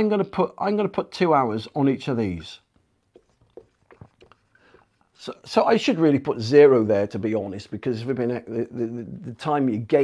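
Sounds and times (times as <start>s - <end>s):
marker pen writing on whiteboard: 3.1s - 5.0s.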